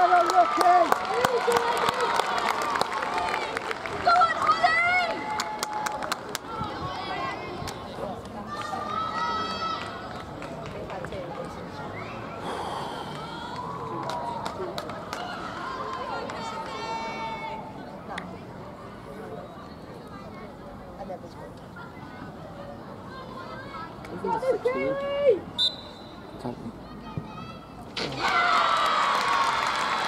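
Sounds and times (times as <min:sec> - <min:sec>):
people clapping: 0:00.0 - 0:06.6, 0:07.6 - 0:08.8, 0:09.6 - 0:11.6, 0:13.5 - 0:16.9, 0:28.1 - 0:30.0
spectators chattering: 0:00.0 - 0:28.3.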